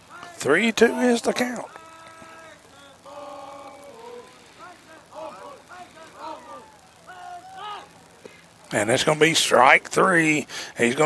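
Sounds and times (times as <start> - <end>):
distant voices shouting: 0.0 - 11.0.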